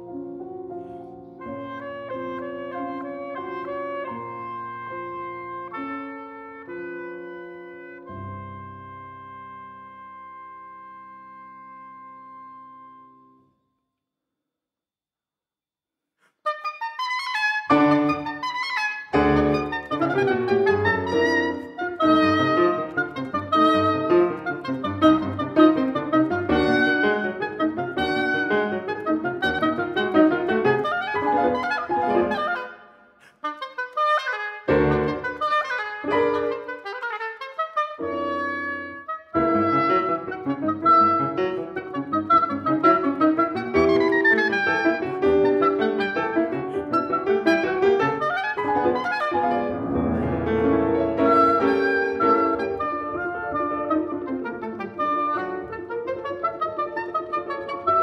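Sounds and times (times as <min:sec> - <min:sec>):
oboe: 0:00.0 - 0:13.5, 0:16.4 - 0:58.0
piano: 0:00.0 - 0:13.8, 0:16.4 - 0:58.0.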